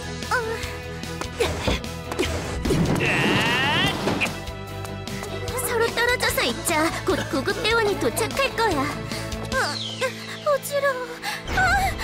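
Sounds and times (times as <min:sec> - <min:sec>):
background music: 0:00.0 - 0:12.0
desks shoved across floor: 0:03.8 - 0:04.4.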